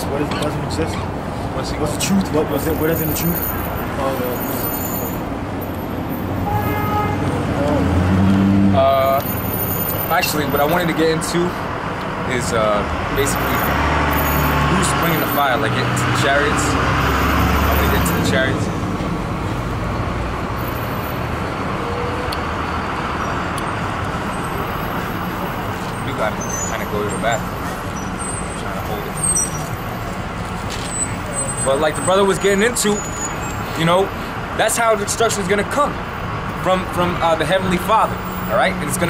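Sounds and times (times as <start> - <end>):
street traffic: 0.0 - 39.0
vehicle horn: 6.4 - 7.4.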